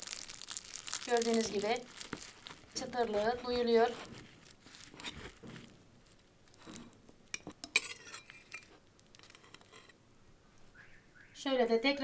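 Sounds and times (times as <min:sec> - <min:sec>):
knife scraping glass plate: 0:07.7 - 0:10.0.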